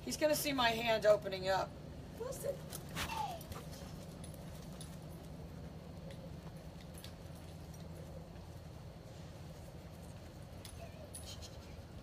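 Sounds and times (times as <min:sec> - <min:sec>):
steady low hum: 0:00.0 - 0:12.0
dog collar tags jingling: 0:02.7 - 0:05.4, 0:06.1 - 0:08.1, 0:10.5 - 0:11.6.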